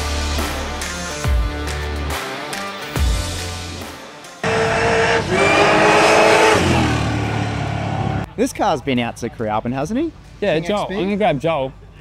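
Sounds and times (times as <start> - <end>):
drag car accelerating hard: 4.4 - 8.3.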